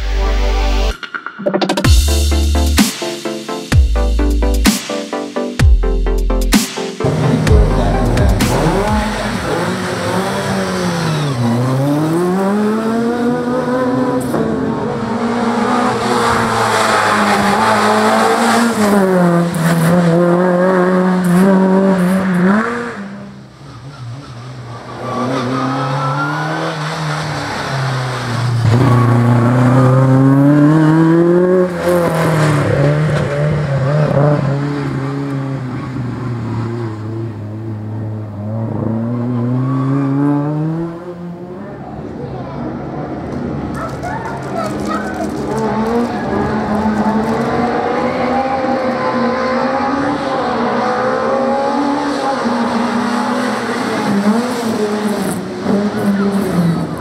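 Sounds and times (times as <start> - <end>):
race car engine revving: 7.0 - 57.0.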